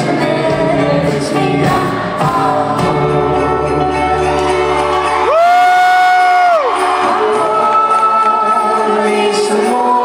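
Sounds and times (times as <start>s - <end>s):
live band playing slow song: 0.0s - 10.0s.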